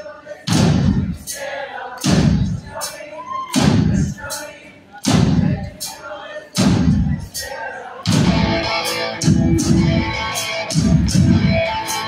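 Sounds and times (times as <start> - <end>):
crowd voices in a large hall: 0.0 - 12.0
deep drum hits: 0.5 - 1.1, 2.1 - 2.6, 3.6 - 4.2, 5.1 - 5.7, 6.6 - 7.2, 8.1 - 11.6.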